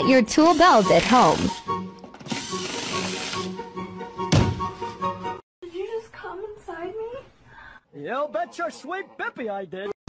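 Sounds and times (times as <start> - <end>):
background music: 0.0 - 5.4
loud thump: 4.3 - 4.8.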